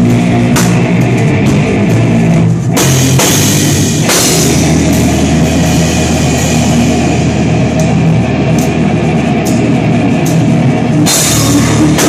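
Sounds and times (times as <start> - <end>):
drum kit: 0.0 - 12.0
electric guitar: 0.0 - 12.0
cymbal crash: 9.4 - 12.0.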